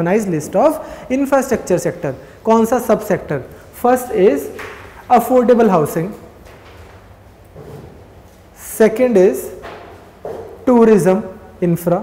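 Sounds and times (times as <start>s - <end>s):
man speaking: 0.0s - 6.3s, 8.6s - 9.6s, 10.6s - 12.0s.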